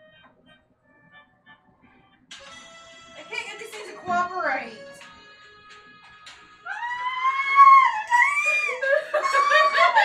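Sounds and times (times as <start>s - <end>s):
high-pitched human scream: 6.6s - 8.8s
person laughing: 8.3s - 10.0s.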